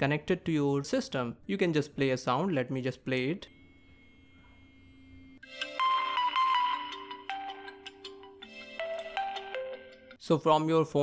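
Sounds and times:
phone ringtone melody: 0:05.4 - 0:10.2.

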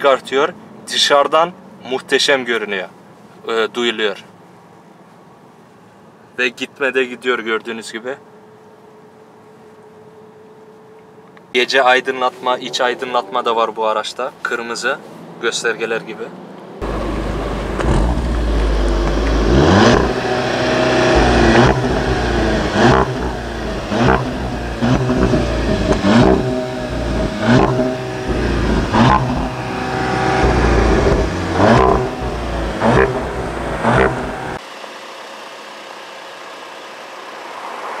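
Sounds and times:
car engine revving: 0:16.8 - 0:34.6
exhaust cracks: 0:16.8 - 0:34.6.

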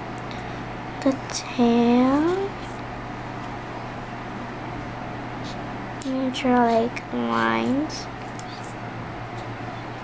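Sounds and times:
room noise hum and hiss: 0:00.0 - 0:10.0
marker scratching on paper: 0:07.6 - 0:08.8.

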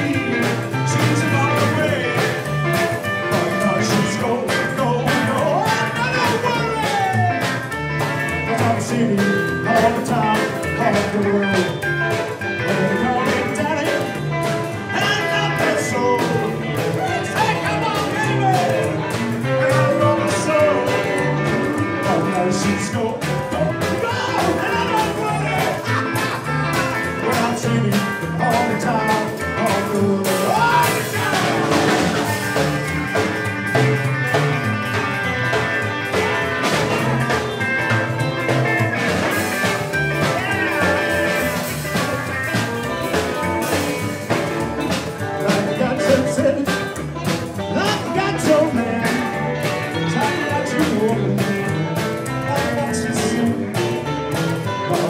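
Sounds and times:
electric guitar lead: 0:00.0 - 0:55.0
rockabilly band playing live: 0:00.0 - 0:55.0
steady drum beat: 0:00.0 - 0:55.0
upright bass: 0:00.0 - 0:55.0.

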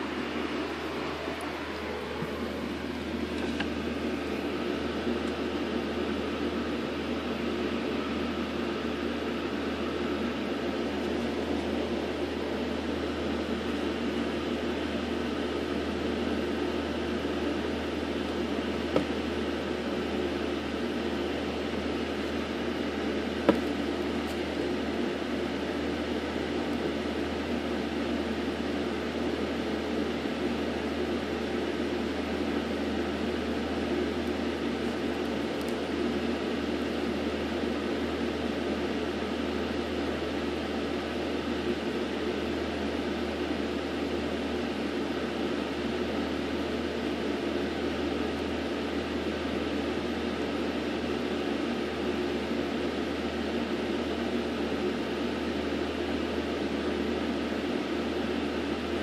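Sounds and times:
machine hum and hiss: 0:00.0 - 0:59.0.

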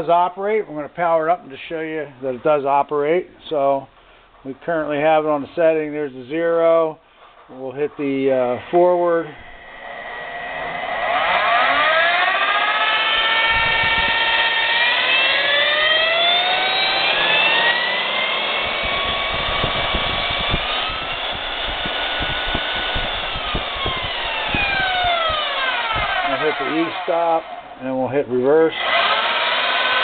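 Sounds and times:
drill motor whining: 0:08.5 - 0:27.8, 0:28.7 - 0:30.0.

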